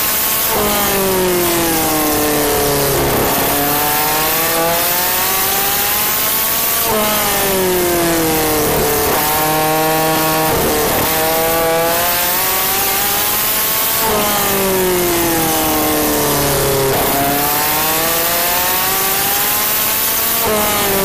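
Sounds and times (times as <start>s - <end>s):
race car engine revving: 0.0s - 21.0s.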